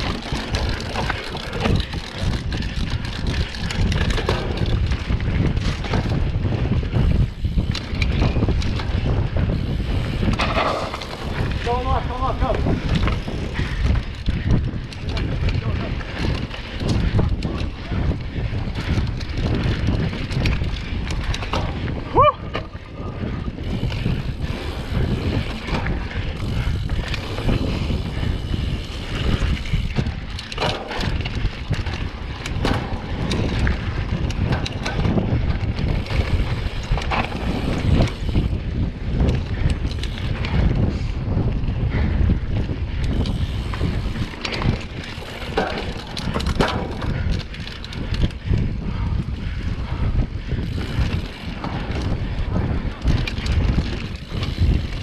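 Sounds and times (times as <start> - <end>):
bike clicks and rattles: 0.0 - 55.0
tyres rumbling on dirt trail: 0.0 - 55.0
wind buffeting microphone: 0.0 - 55.0.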